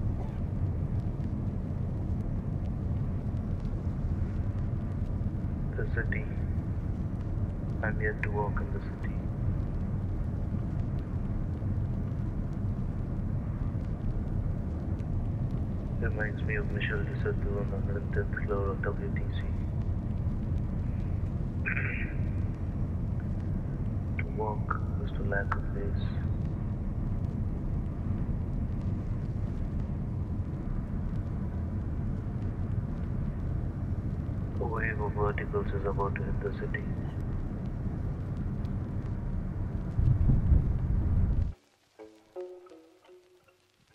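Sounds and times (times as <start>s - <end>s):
jet engine cabin drone: 0.0s - 41.6s
faint steady whine: 0.0s - 43.9s.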